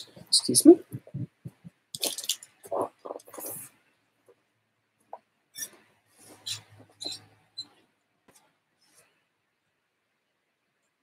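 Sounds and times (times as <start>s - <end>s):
rustling and shuffling: 0.0s - 9.4s.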